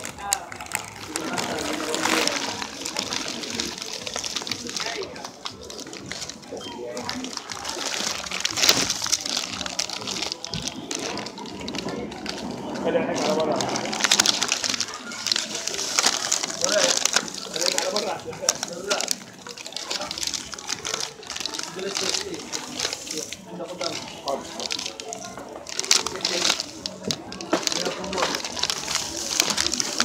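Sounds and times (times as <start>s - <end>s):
plastic packaging crinkling: 0.0s - 30.0s
voices talking in background: 0.0s - 30.0s.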